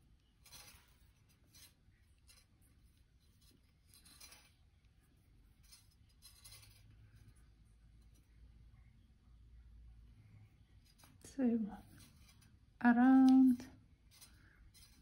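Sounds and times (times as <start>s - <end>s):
wire rasping: 0.0s - 8.5s, 10.6s - 15.0s.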